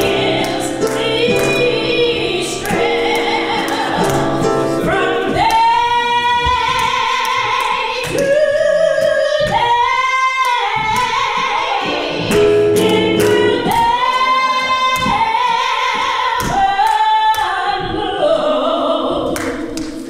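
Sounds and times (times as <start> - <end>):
person singing gospel: 0.0 - 20.0.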